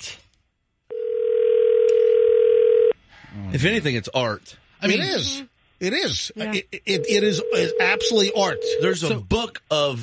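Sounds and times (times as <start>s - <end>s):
telephone ringing tone: 0.9s - 3.0s, 6.9s - 9.0s.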